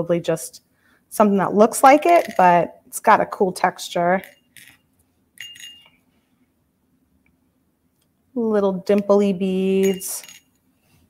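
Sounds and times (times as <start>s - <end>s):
beads clinking: 1.8s - 2.7s, 4.2s - 6.1s, 9.7s - 10.6s.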